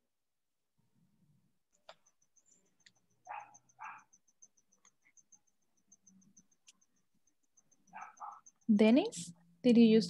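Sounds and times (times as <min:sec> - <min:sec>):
rapid high-pitched chirping: 0:01.9 - 0:10.0.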